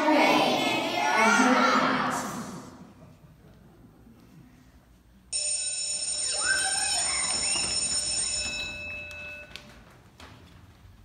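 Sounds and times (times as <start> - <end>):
bell ringing: 5.3 - 9.8.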